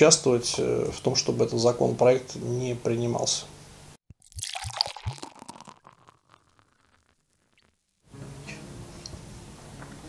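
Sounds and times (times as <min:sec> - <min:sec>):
drink glugging into glass: 0:04.1 - 0:07.8
crackling fizz: 0:04.1 - 0:08.1.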